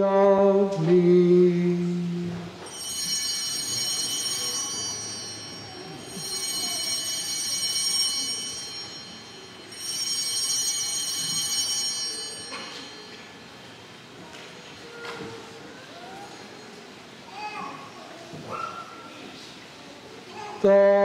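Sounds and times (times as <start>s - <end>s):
altar bells ringing: 2.6s - 14.0s.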